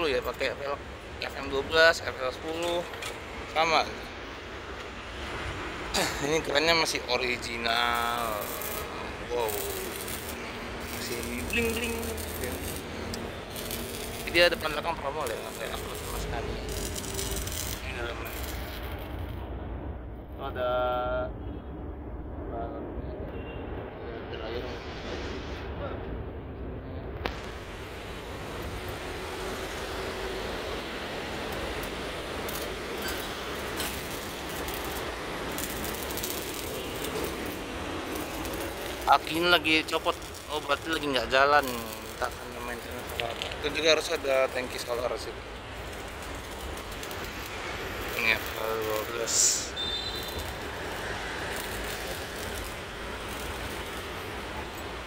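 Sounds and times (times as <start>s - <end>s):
faint hiss: 0.0s - 19.2s, 27.1s - 55.0s
passing traffic rumble: 0.0s - 55.0s.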